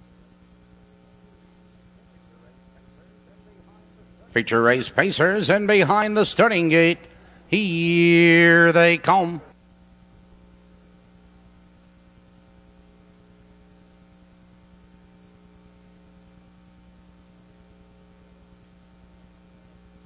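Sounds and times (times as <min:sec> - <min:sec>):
faint mains hum: 0:00.0 - 0:20.0.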